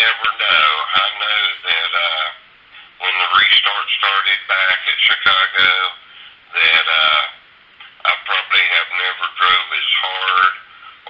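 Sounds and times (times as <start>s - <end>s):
man talking over telephone: 0.0s - 2.4s, 3.0s - 7.4s, 8.0s - 11.0s.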